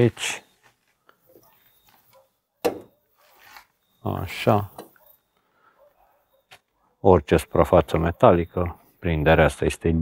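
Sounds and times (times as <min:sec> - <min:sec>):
rustle of handling: 0:03.2 - 0:04.0.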